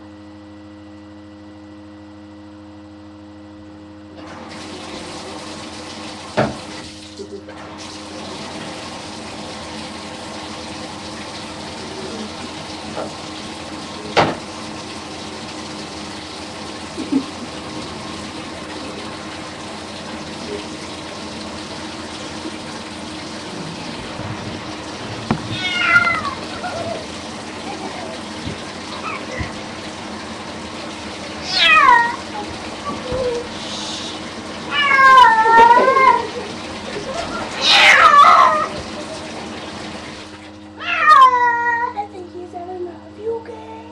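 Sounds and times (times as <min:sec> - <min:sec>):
water running from bathtub tap: 0:04.2 - 0:42.2
sharp knocks: 0:25.2 - 0:25.6
cat meowing: 0:25.4 - 0:27.0, 0:31.4 - 0:33.4, 0:34.7 - 0:36.3, 0:37.6 - 0:38.8, 0:40.8 - 0:42.0.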